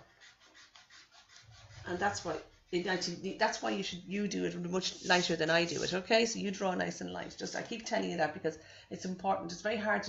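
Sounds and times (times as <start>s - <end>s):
eraser rubbing on paper: 0.0s - 6.0s.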